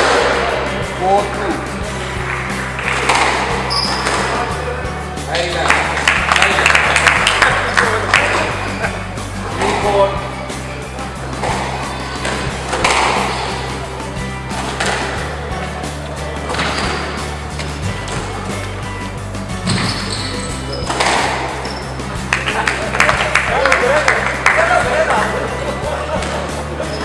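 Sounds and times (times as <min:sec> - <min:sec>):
background music with bass line: 0:00.0 - 0:27.0
voices: 0:00.0 - 0:27.0
ball hitting court walls: 0:02.2 - 0:04.6, 0:09.5 - 0:10.3, 0:11.3 - 0:13.8, 0:14.5 - 0:15.3, 0:19.6 - 0:23.4
squash ball struck by rackets: 0:02.9 - 0:04.5, 0:11.3 - 0:13.6, 0:14.6 - 0:15.2, 0:20.8 - 0:21.7.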